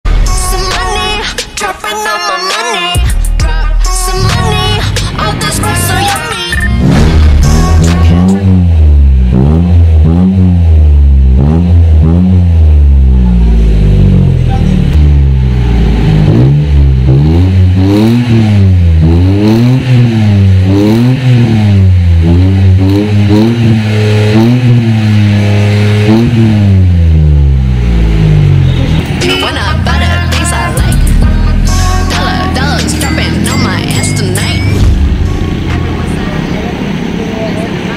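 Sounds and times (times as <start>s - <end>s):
car engine revving: 0.0s - 37.9s.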